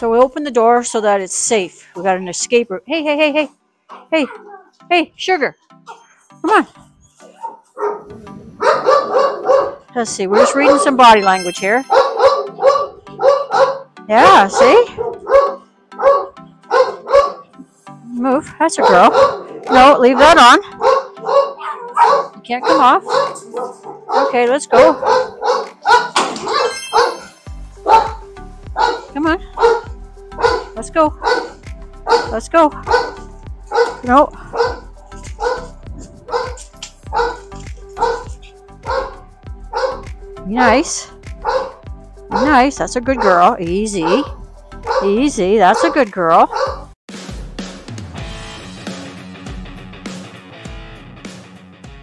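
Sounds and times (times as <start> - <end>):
dog barking: 3.9 - 4.8, 5.9 - 6.1, 7.2 - 11.2, 11.8 - 17.6, 18.8 - 28.2, 28.8 - 40.1, 41.4 - 46.9
background music with beat: 25.0 - 42.4, 46.7 - 52.0.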